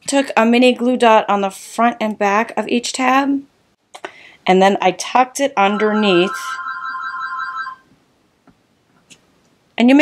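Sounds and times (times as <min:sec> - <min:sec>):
electronic ringing tone: 0:05.7 - 0:07.9.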